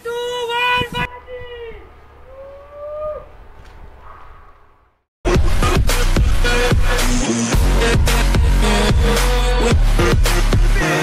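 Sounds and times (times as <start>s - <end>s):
man yelling: 0.0s - 3.2s.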